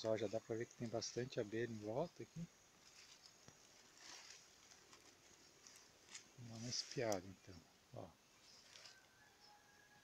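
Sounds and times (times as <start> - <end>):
soft rustle: 0.0 - 7.6, 8.3 - 9.6
faint outdoor hiss: 0.0 - 10.0.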